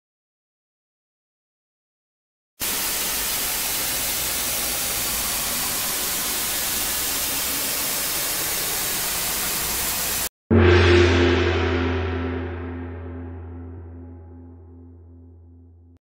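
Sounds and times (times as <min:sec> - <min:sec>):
static white noise hiss: 0:02.6 - 0:10.2.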